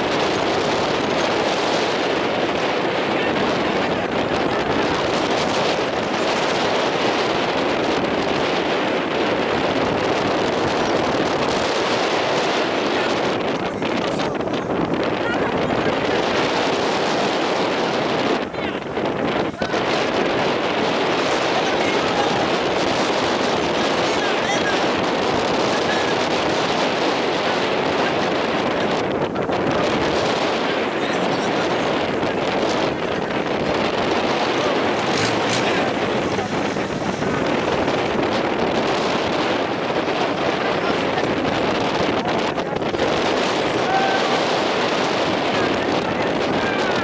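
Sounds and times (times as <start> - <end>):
boat engine running: 0.0 - 47.0
strong wind on microphone: 0.0 - 47.0.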